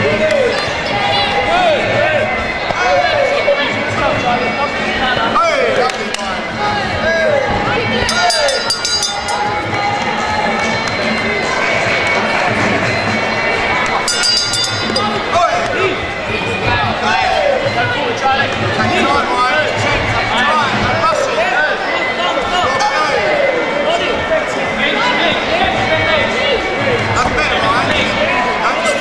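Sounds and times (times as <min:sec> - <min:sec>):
crowd shouting: 0:00.0 - 0:29.0.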